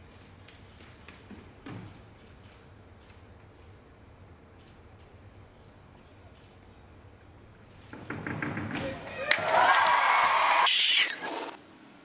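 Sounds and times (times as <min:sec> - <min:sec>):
crowd cheering and whooping: 0:08.9 - 0:11.2.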